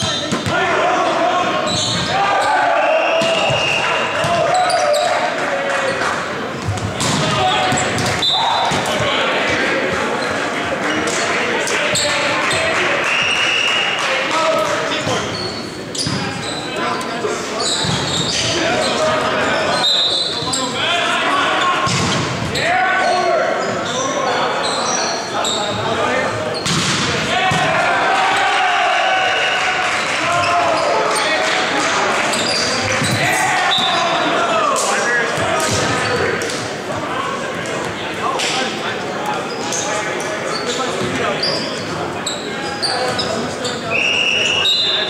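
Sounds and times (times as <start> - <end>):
players shouting: 0.0 - 15.5, 17.5 - 26.3, 27.0 - 37.5
volleyball slaps: 3.2 - 4.6, 6.6 - 9.6, 21.8 - 22.4, 26.6 - 27.8.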